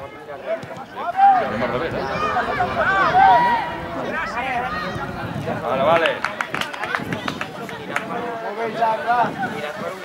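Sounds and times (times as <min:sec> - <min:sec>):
distant voices: 0:00.6 - 0:08.4.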